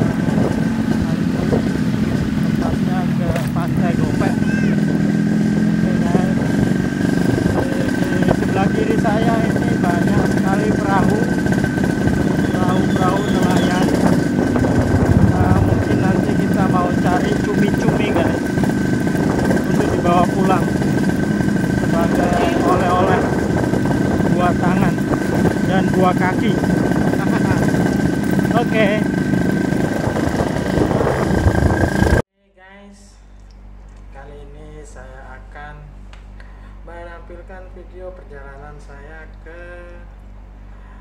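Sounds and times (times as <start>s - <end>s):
small engine running: 0.0s - 32.2s
thin high whine: 0.0s - 32.2s
background voices: 7.4s - 27.8s.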